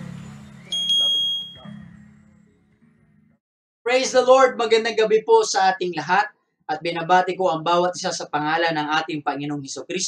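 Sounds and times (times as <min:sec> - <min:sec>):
electronic notification ding: 0:00.7 - 0:01.6.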